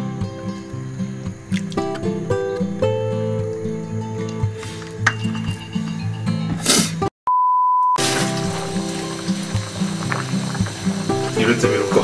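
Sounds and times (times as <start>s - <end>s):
acoustic guitar music: 0.0s - 7.1s, 8.0s - 12.0s
electronic beep: 7.3s - 8.0s.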